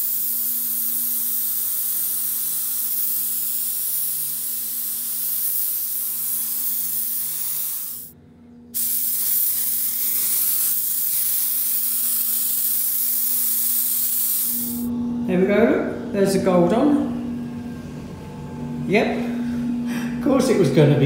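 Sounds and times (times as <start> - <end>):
spray gun hissing: 0.0 - 8.1, 8.8 - 14.9.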